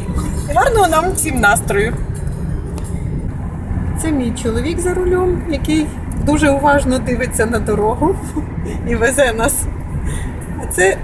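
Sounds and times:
car interior road rumble: 0:00.0 - 0:11.0.

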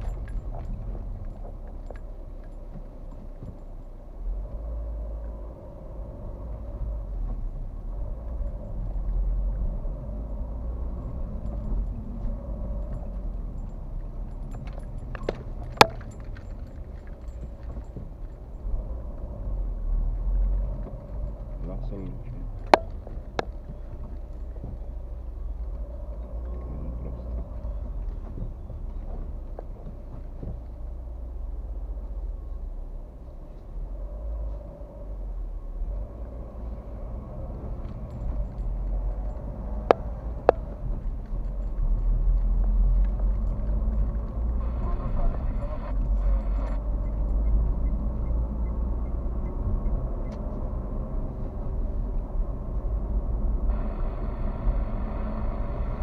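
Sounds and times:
car road and engine rumble: 0:00.0 - 0:56.0.

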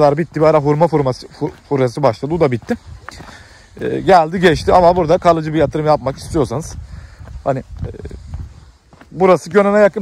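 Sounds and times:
steady low rumble: 0:00.5 - 0:08.9.

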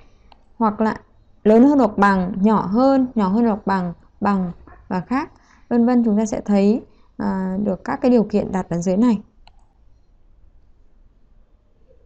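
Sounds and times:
computer mouse click: 0:09.4 - 0:09.8.

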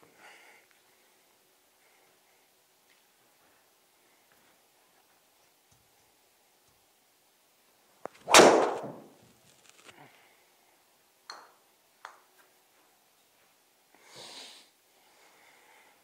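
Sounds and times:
soft rustle: 0:08.0 - 0:10.3
golf ball struck by driver: 0:08.2 - 0:09.1.

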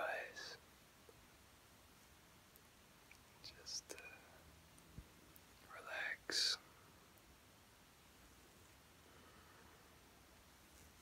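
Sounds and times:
man whispering: 0:00.0 - 0:00.6, 0:03.4 - 0:04.5, 0:05.6 - 0:06.9
room hiss: 0:00.0 - 0:11.0.

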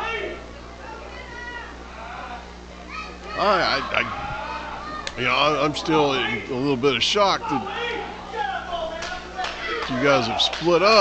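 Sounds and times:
faint crowd voices: 0:00.0 - 0:11.0
steady low hum: 0:00.0 - 0:11.0.

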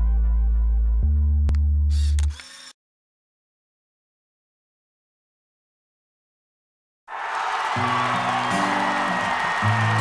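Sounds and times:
deep synth bass drone: 0:00.0 - 0:01.9
bright shutter-like clatter: 0:02.0 - 0:02.8.

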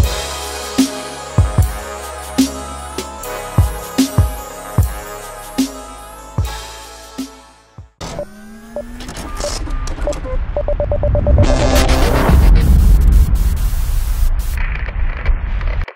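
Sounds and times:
stuttering beeps: 0:08.0 - 0:12.7
crackly glitchy build: 0:08.0 - 0:15.9
deep rumble: 0:10.3 - 0:15.8
end music: 0:10.7 - 0:14.1.

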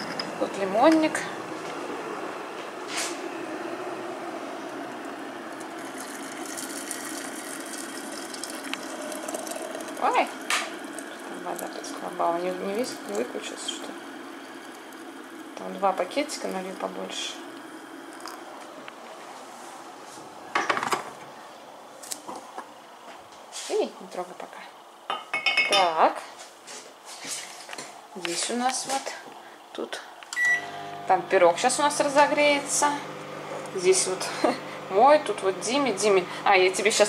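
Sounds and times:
electric kettle boiling: 0:00.0 - 0:21.4, 0:27.7 - 0:37.0.

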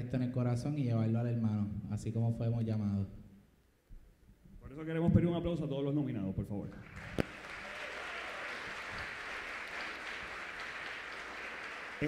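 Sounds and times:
audience applauding: 0:06.8 - 0:12.0.

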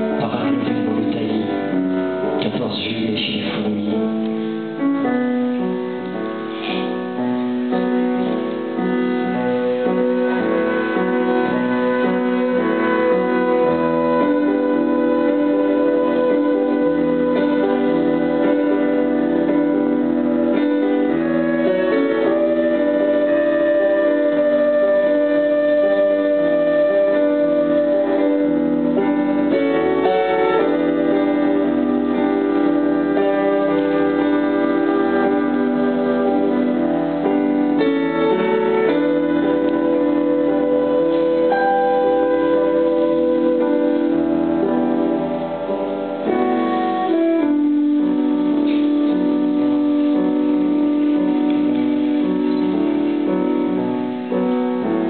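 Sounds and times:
flute melody: 0:00.0 - 0:55.0
band playing instrumental: 0:04.8 - 0:54.8.

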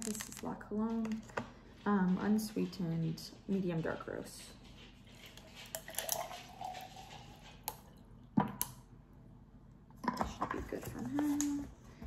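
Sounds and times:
coffee pouring into a glass: 0:05.7 - 0:07.2.

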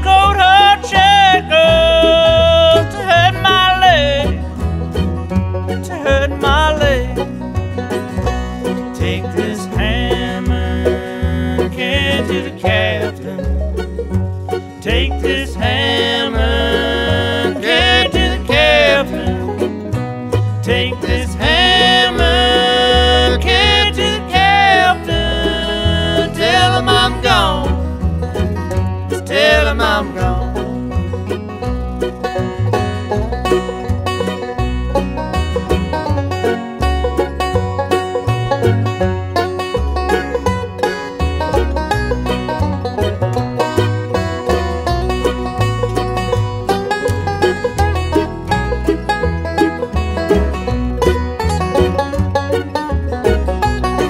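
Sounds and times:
banjo picking rapid runs: 0:00.0 - 0:54.0
guitar: 0:00.0 - 0:54.0
sliding lead line: 0:00.0 - 0:54.0
stepping bass line: 0:00.0 - 0:54.0.

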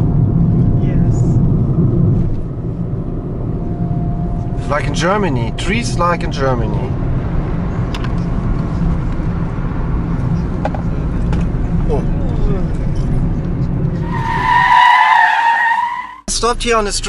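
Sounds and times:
car driving rumble inside cabin: 0:00.0 - 0:14.4
tyre screech: 0:14.0 - 0:16.3.

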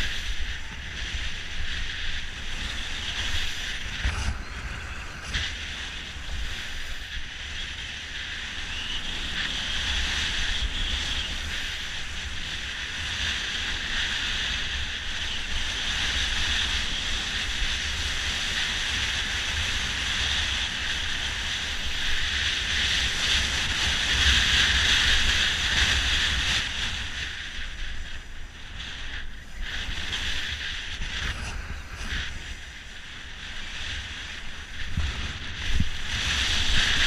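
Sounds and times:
skis scraping over snow: 0:00.0 - 0:37.0
wind buffeting microphone: 0:00.0 - 0:37.0.

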